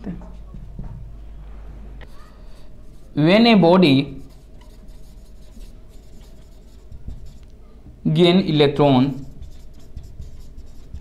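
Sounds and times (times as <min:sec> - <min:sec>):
marker scratching on whiteboard: 0:02.0 - 0:07.6, 0:09.0 - 0:11.0.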